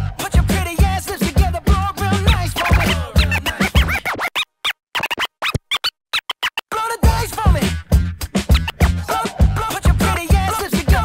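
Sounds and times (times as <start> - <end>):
hip-hop beat: 0.0 - 5.3, 6.2 - 11.0
dj scratching: 0.0 - 11.0.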